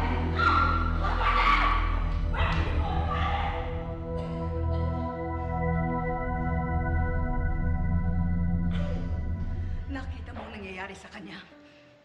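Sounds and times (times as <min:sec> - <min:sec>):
music with low drone: 0:00.0 - 0:11.7.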